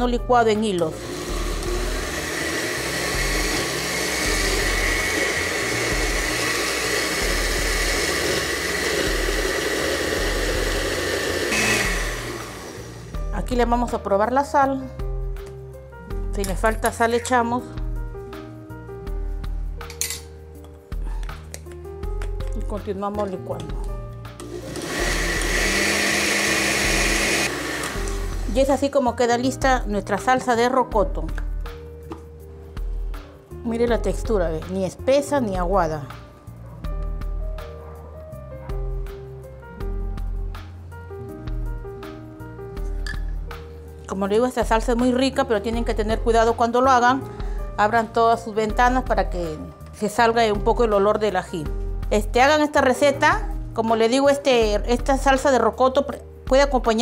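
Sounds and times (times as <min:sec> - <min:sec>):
blender motor running: 0:00.9 - 0:13.2, 0:24.4 - 0:28.7.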